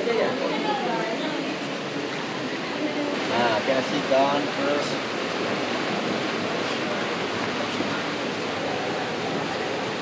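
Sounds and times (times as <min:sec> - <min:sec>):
river water flowing over rocks: 0:00.0 - 0:10.0.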